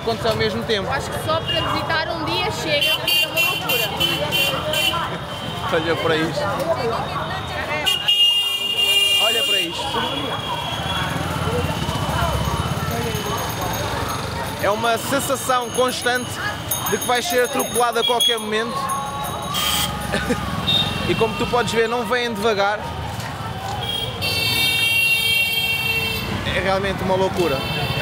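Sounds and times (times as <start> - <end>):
crowd voices: 0.0 - 28.0
low rumble of street traffic: 0.0 - 28.0
high-pitched vehicle horn: 7.8 - 11.0
scooter engines puttering: 9.3 - 28.0.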